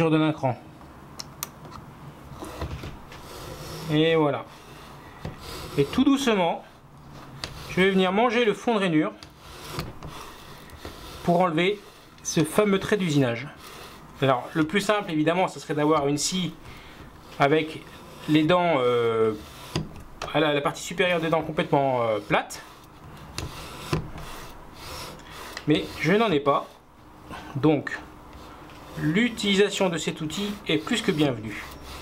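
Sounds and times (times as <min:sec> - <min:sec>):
plane blade scraping wood: 0:02.4 - 0:26.8, 0:28.3 - 0:32.0.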